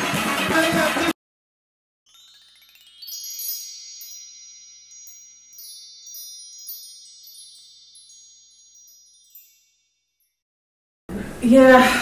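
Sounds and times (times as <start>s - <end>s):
bell-like chime tones: 2.1s - 10.5s.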